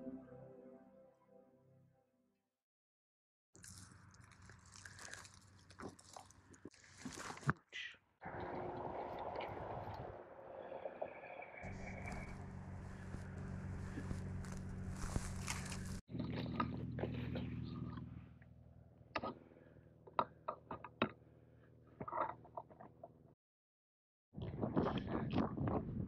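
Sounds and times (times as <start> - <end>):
hands rustling through pine needles: 3.6 - 7.4, 12.0 - 16.0
low steady hum: 11.6 - 19.0.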